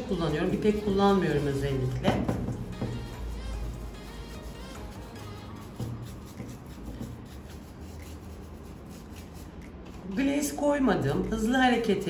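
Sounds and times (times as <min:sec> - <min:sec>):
bristle brush scrubbing paint: 0:00.0 - 0:10.6.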